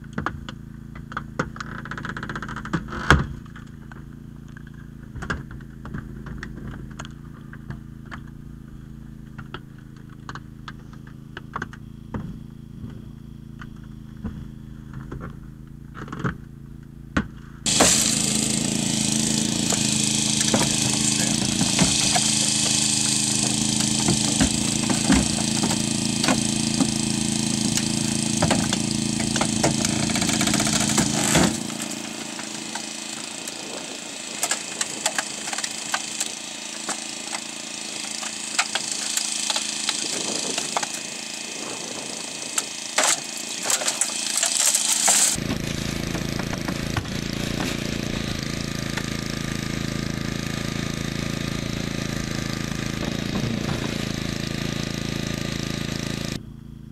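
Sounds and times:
hydraulic power unit running: 0.0s - 56.9s
metal and plastic cracking: 27.6s - 41.1s, 42.5s - 49.1s.

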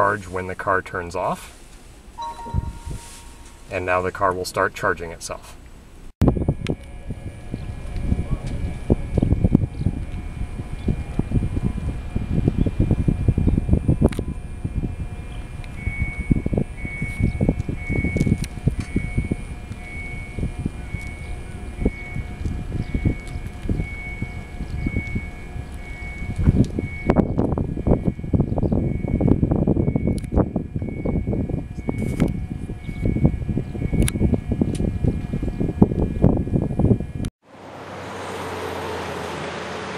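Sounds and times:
faint electronic beeps: 2.2s - 3.6s
wind buffeting microphone: 6.2s - 37.3s.

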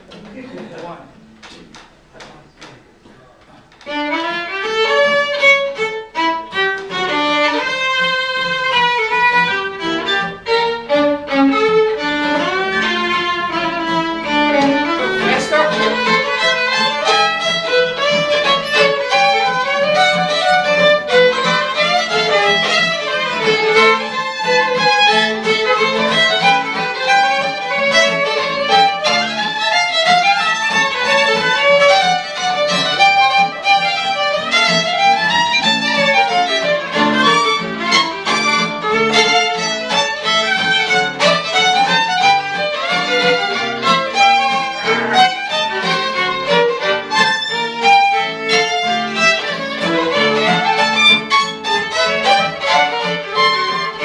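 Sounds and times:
acoustic guitar accompaniment: 0.0s - 54.0s
two fiddles playing a tune: 0.0s - 54.0s.

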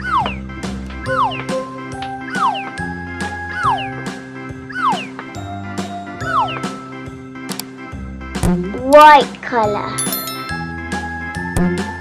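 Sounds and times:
jingly children's music: 9.0s - 12.0s.

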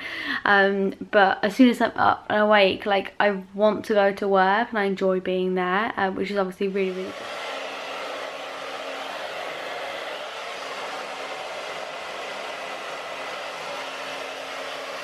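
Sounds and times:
hair dryer blowing: 6.8s - 15.0s.

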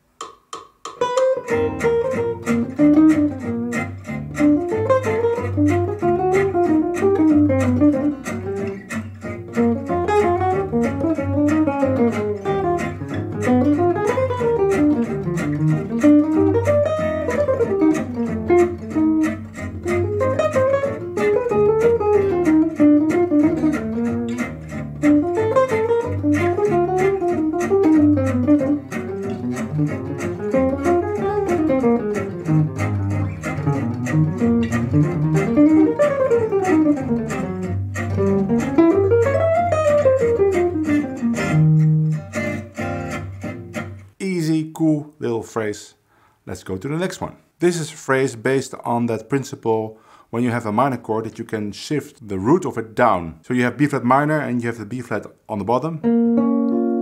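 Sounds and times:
backing track with bass and beat: 0.0s - 8.9s
jazz guitar playing: 0.8s - 45.7s, 55.7s - 57.0s.

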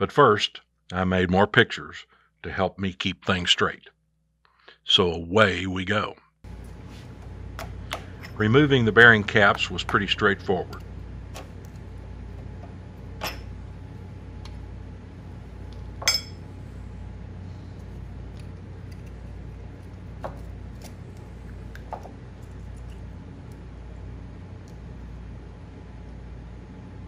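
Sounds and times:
steady low hum: 0.0s - 27.0s
metallic clinks on cast iron: 16.0s - 16.4s.

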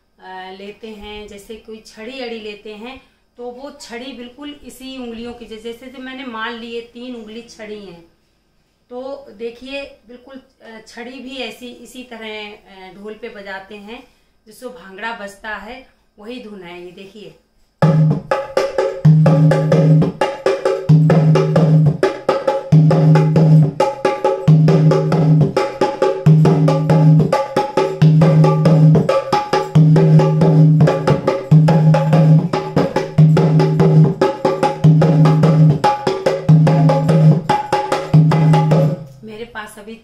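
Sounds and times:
hand drum rhythm: 17.8s - 39.2s.

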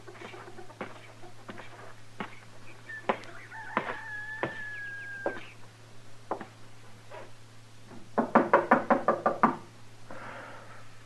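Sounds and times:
sharp knocks on wood: 3.1s - 5.4s, 7.9s - 9.7s.

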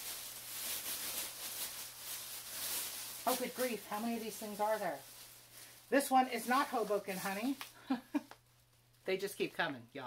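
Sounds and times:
plastic bag crinkling: 0.0s - 9.6s.

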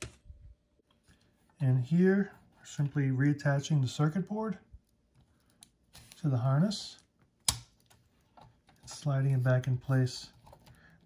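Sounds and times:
sharp plastic click: 7.4s - 7.8s.

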